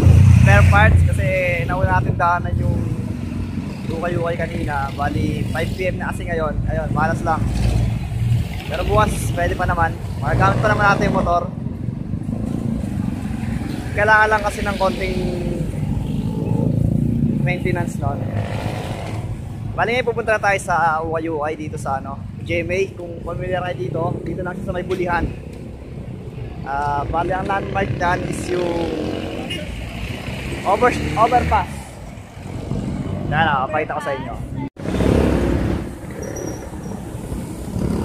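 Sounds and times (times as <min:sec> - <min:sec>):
traffic engines rumbling: 0:00.0 - 0:38.0
vehicle engine passing: 0:23.5 - 0:38.0.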